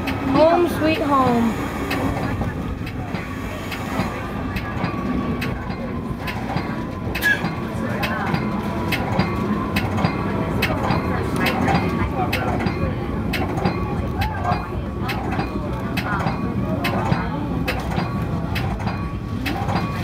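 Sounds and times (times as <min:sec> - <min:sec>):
train rumbling: 0:00.0 - 0:20.0
wheels clicking over rail joints: 0:00.0 - 0:20.0.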